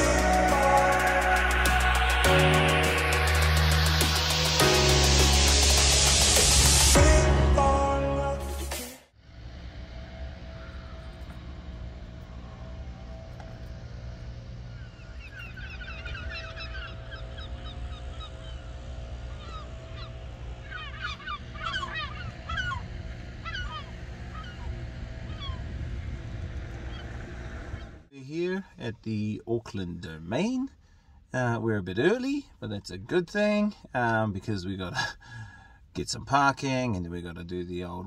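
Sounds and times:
steady low rumble: 9.1s - 38.0s
birds calling in short notes: 14.7s - 25.6s.

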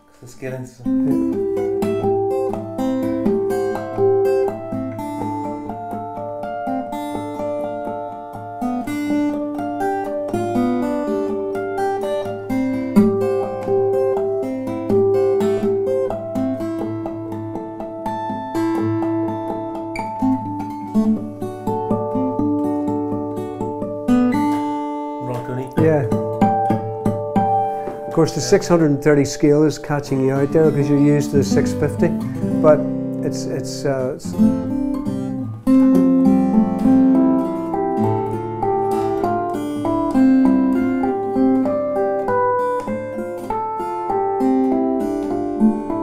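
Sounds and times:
man speaking: 0.2s - 1.4s, 25.2s - 26.2s, 28.1s - 34.4s
fingerstyle acoustic guitar: 0.8s - 46.0s.

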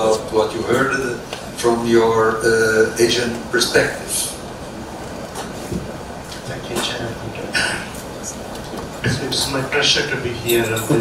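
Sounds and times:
conference hall background noise: 0.0s - 11.0s.

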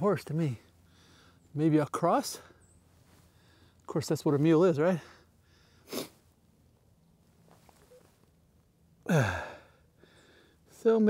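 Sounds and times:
man sighing: 9.0s - 10.6s.

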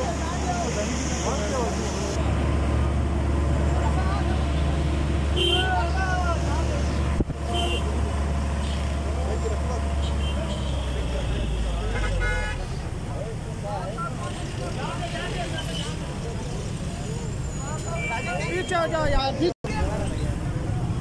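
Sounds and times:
crowd chatter: 0.0s - 4.8s.

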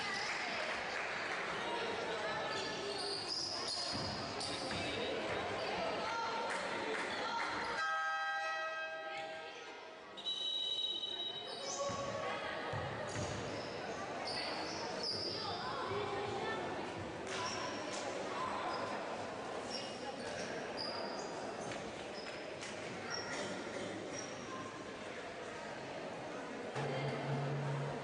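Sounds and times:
background chatter: 0.0s - 7.8s, 8.9s - 28.0s
shoe squeaks: 2.4s - 5.1s, 10.2s - 12.0s, 13.4s - 15.6s, 19.6s - 24.5s.

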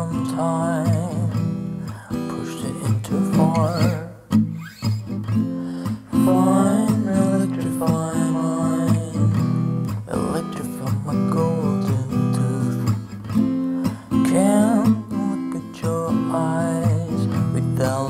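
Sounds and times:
man singing in low voice: 0.0s - 4.3s, 6.0s - 13.1s, 13.8s - 18.0s
acoustic guitar strumming: 0.0s - 18.0s.

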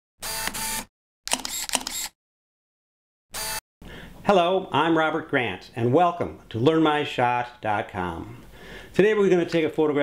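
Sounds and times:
camera shutter clicks: 0.3s - 2.2s.

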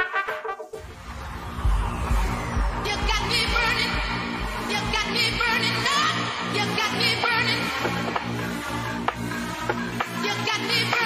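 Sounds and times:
electronic dance music: 0.0s - 11.0s
low bass line: 0.9s - 6.4s
kick drum: 1.6s - 5.6s.

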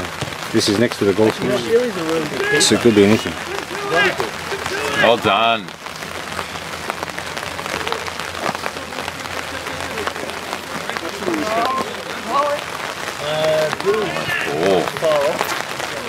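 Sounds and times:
rain falling: 0.0s - 16.0s
voices calling out: 0.0s - 16.0s.

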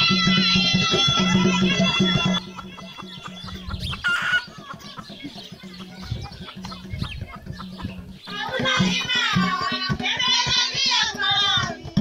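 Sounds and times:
wavering high-pitched voice: 0.0s - 7.3s
music with pulsing low beat: 1.2s - 9.6s
chickens clucking: 1.2s - 10.0s.

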